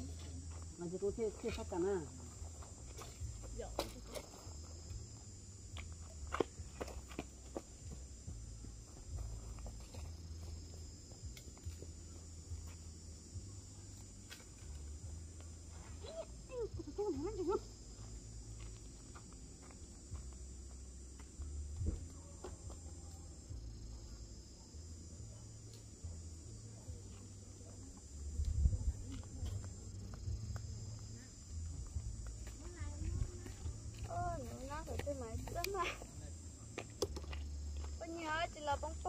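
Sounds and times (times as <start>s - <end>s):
steady low rumble: 22.9s - 39.0s.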